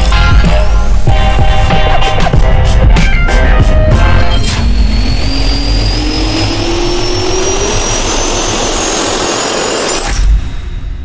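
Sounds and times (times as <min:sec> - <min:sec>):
jet turbine whine: 0:03.9 - 0:11.0.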